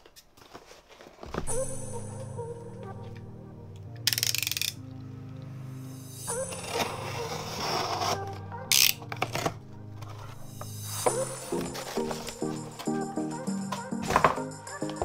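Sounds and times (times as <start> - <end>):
background music with held notes: 1.4 - 15.0.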